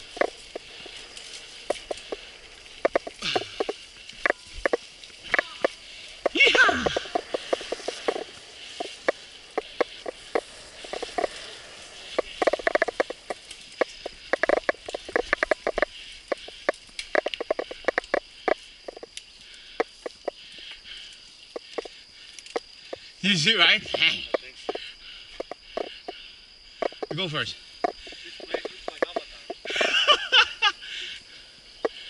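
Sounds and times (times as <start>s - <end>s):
insects chirring: 0.0s - 32.0s
mountain bike rattling and clicking: 0.0s - 32.0s.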